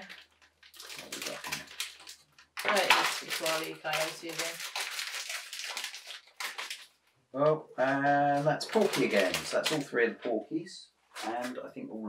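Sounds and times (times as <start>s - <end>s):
plastic bags crinkling: 0.0s - 7.1s, 7.8s - 10.0s.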